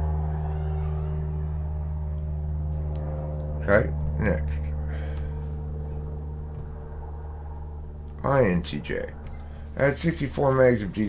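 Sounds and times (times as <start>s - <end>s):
low hum of held tones: 0.0s - 11.0s.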